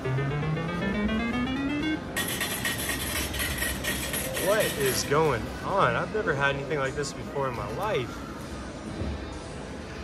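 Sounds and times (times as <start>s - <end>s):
slot machine win tone: 0.0s - 5.1s
ticket printer running: 0.2s - 5.1s.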